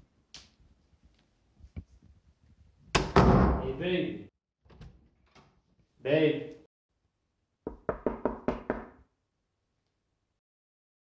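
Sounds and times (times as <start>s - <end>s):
fist knocking on door: 7.7s - 9.0s.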